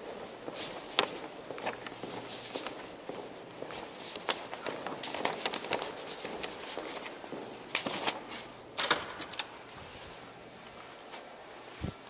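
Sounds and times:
footsteps on hard floor: 0:00.0 - 0:08.3.

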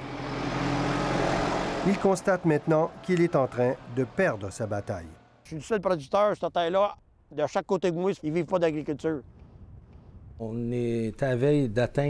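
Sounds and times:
tractor engine driving by: 0:00.0 - 0:05.4.

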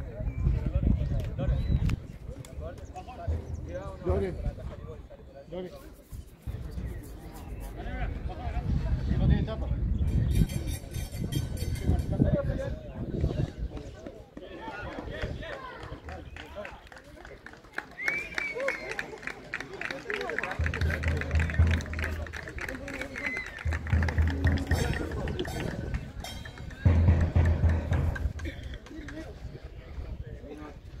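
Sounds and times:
people's voices: 0:00.0 - 0:31.0
deep rumbles: 0:23.5 - 0:28.4.

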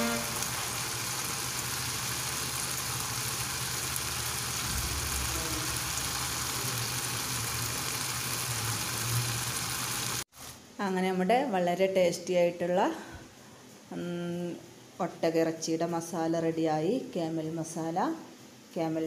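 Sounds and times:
meat sizzling in a pan: 0:00.0 - 0:10.3.

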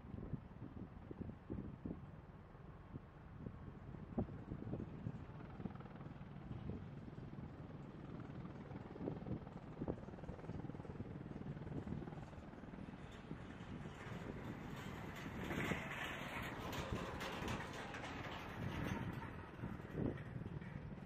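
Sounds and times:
distant helicopter engines and rotor: 0:00.0 - 0:21.0.

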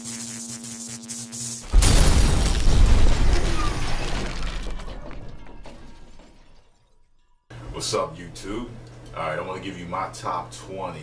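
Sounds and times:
glass shards settling: 0:01.8 - 0:07.4
steady room hum: 0:07.5 - 0:11.0
man talking: 0:07.7 - 0:11.0.

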